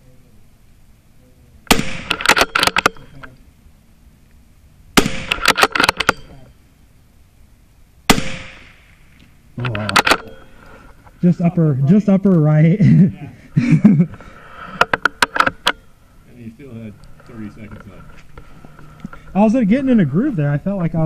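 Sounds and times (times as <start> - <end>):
rifle shots: 1.7 - 3.2, 5.0 - 6.3, 8.1 - 9.1
sharp clicks: 1.7 - 3.4, 5.0 - 6.4, 9.2 - 10.4, 14.7 - 15.8.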